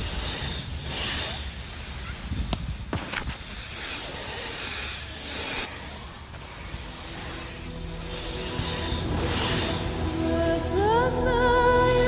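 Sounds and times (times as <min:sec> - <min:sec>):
snake hissing: 0:00.0 - 0:10.8.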